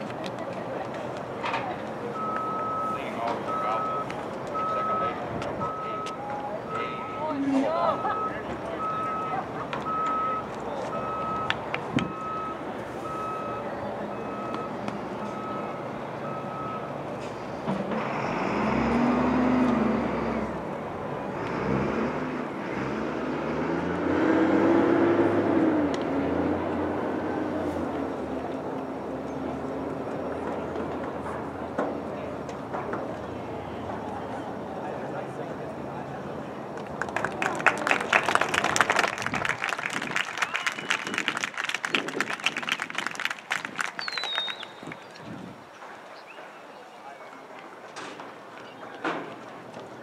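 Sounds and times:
electronic beeping: 0:02.2 - 0:07.3
vehicle engine revving: 0:17.3 - 0:28.7.

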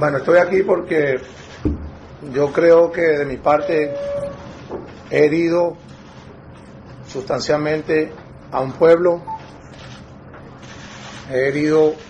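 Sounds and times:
small room background noise: 0:00.0 - 0:12.0.

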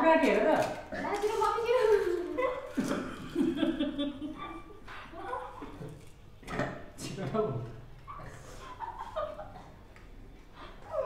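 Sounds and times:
people talking: 0:00.0 - 0:03.0
people laughing: 0:02.4 - 0:04.8, 0:08.4 - 0:09.8.

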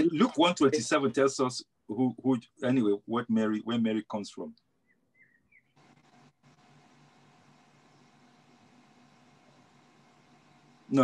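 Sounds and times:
steady background hiss: 0:05.8 - 0:11.0.

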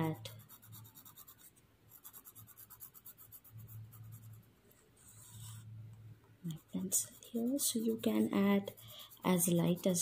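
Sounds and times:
pencil scratching on paper: 0:00.0 - 0:05.7, 0:06.5 - 0:10.0.

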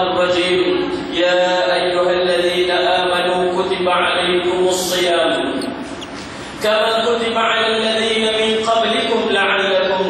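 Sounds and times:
man chanting recitation: 0:00.0 - 0:05.7, 0:06.6 - 0:10.0.

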